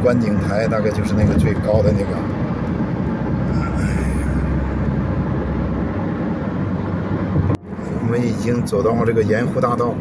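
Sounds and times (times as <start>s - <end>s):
car road and tyre noise: 0.0s - 10.0s.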